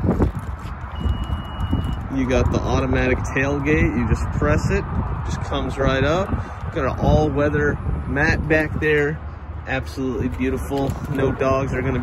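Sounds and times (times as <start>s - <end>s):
microphone handling noise: 0.0s - 2.1s
wind rumble: 0.0s - 12.0s.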